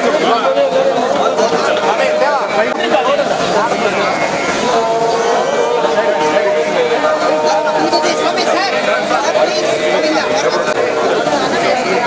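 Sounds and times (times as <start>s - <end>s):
voices chanting together: 0.0s - 12.0s.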